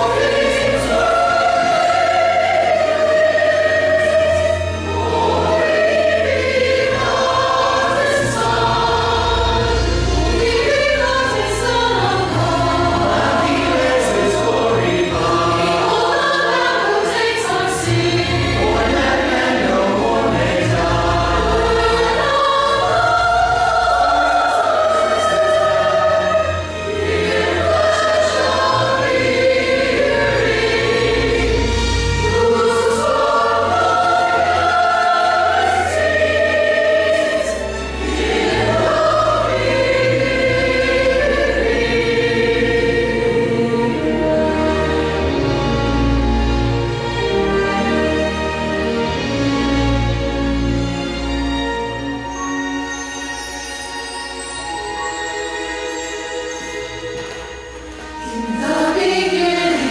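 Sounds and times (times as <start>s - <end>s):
choir singing: 0.0s - 59.9s.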